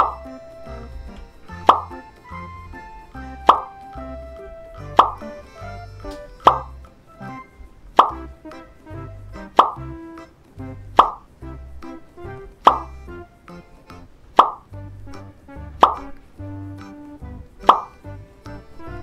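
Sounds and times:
background music with bass line: 0.0 - 19.0
cartoon pops: 1.5 - 2.0, 4.8 - 5.4, 6.1 - 6.8, 7.4 - 8.6, 9.4 - 11.3, 12.6 - 13.6, 14.3 - 16.2, 17.6 - 18.0.

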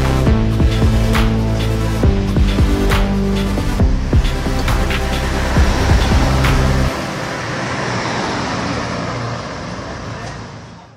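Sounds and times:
background music: 0.0 - 8.3
street traffic noise: 0.0 - 10.9
car passing: 2.5 - 10.9.

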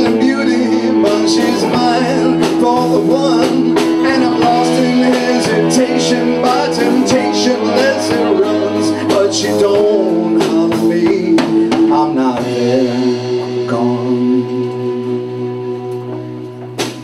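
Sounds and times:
man singing: 0.0 - 16.5
drums: 0.0 - 17.0.

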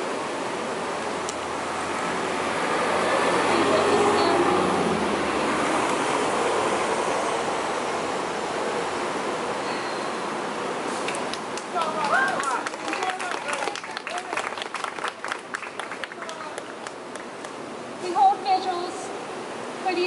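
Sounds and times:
vehicle passing: 1.4 - 9.5.

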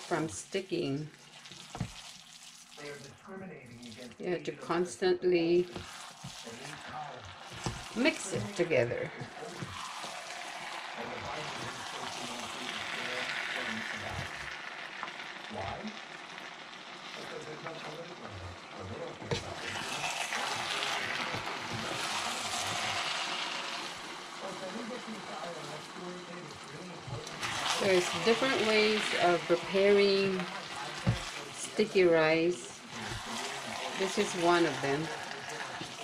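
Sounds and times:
rice sizzling in a wok: 0.0 - 4.2, 4.8 - 36.0
wooden spatulas stirring: 1.2 - 2.8, 5.6 - 15.1, 18.5 - 24.8, 25.4 - 36.0.

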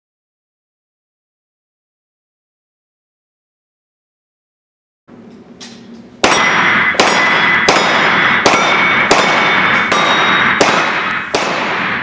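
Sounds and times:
bullets clanging on steel plate: 5.6 - 11.8
handgun shots echoing indoors: 5.6 - 12.0.

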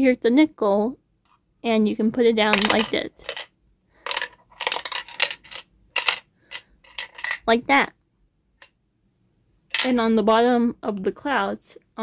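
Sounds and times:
coin rattling in plastic bank: 2.4 - 7.5.

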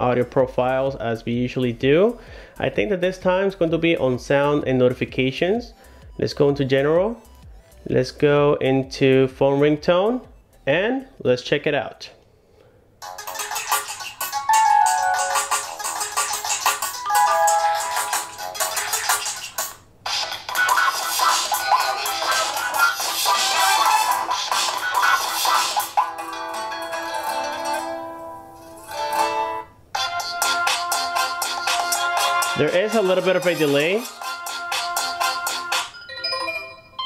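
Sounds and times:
ringtone tunes through speaker: 13.0 - 28.3, 29.3 - 37.0.

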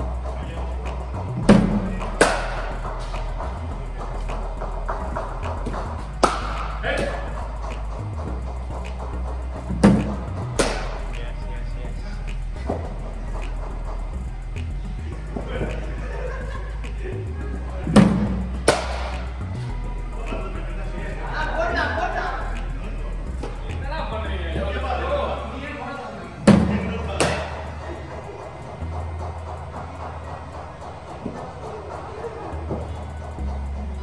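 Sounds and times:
background music: 0.0 - 34.0
steady low hum: 0.0 - 34.0
cricket bat hitting ball: 1.5 - 2.7, 6.2 - 7.2, 9.9 - 10.9, 18.0 - 19.2, 26.5 - 27.6.

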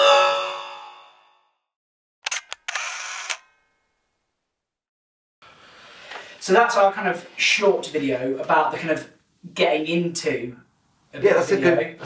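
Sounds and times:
camera shutter clicks and winding: 2.2 - 3.6.

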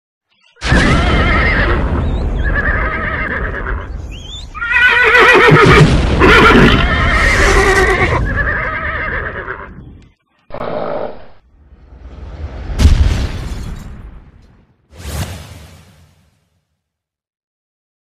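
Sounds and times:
horses whinnying: 0.7 - 9.9, 10.5 - 11.4
low rumble: 11.4 - 14.7.

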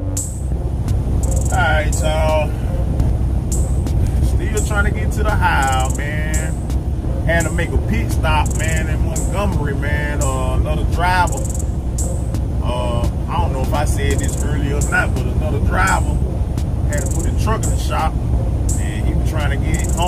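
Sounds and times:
truck engine and tyres drone: 0.0 - 20.0
person speaking: 4.4 - 6.5, 7.3 - 11.5, 12.6 - 16.2, 16.9 - 17.9, 18.8 - 20.0.

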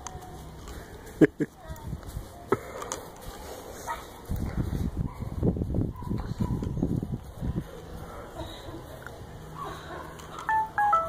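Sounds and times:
short electronic beeps: 10.5 - 11.0.

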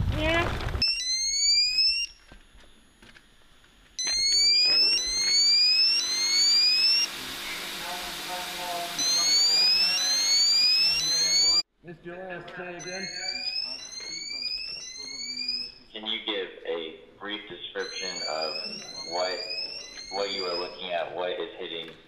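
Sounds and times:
electronic alarm whooping: 0.8 - 2.2, 4.0 - 11.6, 12.8 - 15.9, 17.8 - 21.0.

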